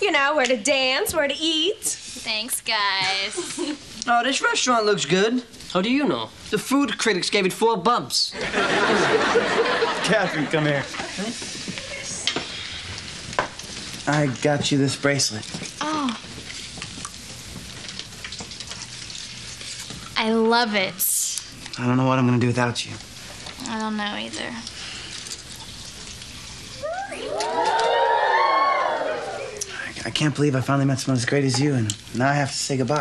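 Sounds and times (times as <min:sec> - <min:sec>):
steady background hiss: 0:00.0 - 0:16.6
audience going aww: 0:26.8 - 0:29.8.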